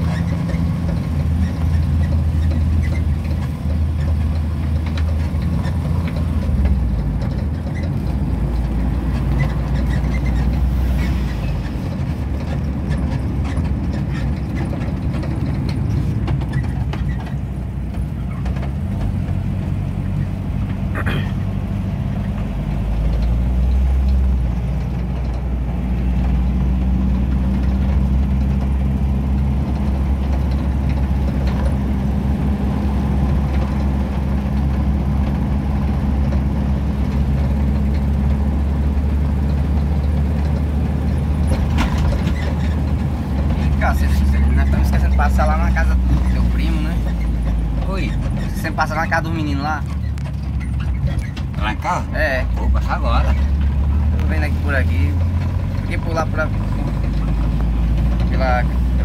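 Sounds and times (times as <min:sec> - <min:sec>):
vehicle engine and road noise: 0:00.0 - 0:59.0.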